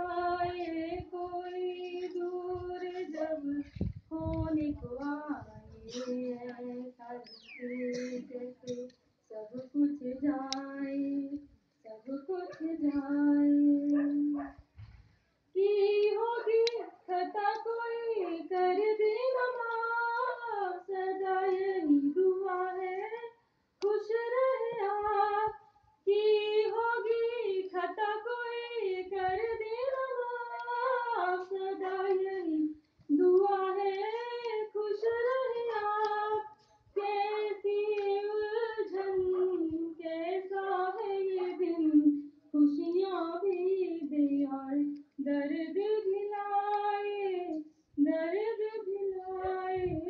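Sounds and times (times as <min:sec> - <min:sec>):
woman singing unaccompanied: 0:00.0 - 0:14.6, 0:15.5 - 0:50.0.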